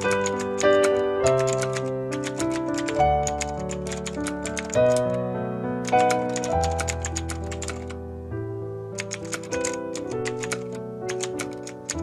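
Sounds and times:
keyboard typing clicks: 0.0 - 5.2, 5.8 - 8.0, 9.0 - 12.0.

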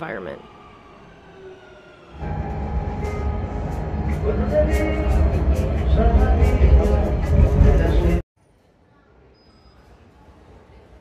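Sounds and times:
platform noise: 0.0 - 8.2
train carriage rumbling: 0.0 - 8.2
train falling whine: 0.0 - 8.2.

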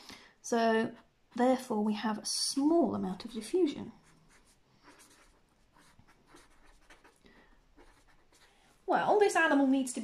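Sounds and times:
marker pen writing on paper: 3.2 - 8.5.

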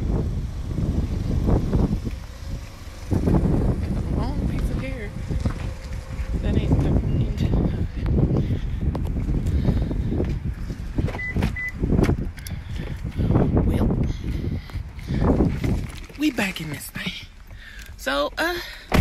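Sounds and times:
wind buffeting microphone: 0.0 - 17.6
woman talking: 4.0 - 5.5, 6.4 - 8.0, 16.2 - 17.3, 17.9 - 18.8.

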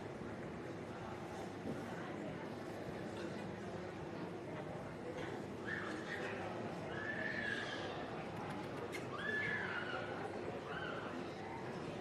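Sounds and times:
murmur of crowd: 0.0 - 12.0.

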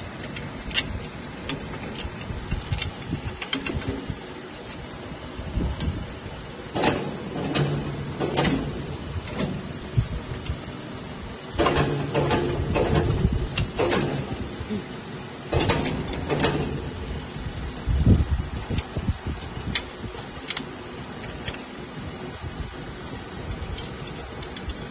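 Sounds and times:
workshop background noise: 0.0 - 10.8, 11.4 - 17.3.

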